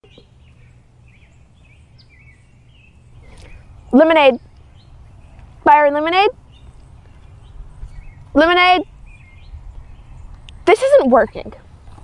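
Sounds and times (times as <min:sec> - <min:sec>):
low background rumble: 0:00.0 - 0:12.0
small birds chirping: 0:00.0 - 0:12.0.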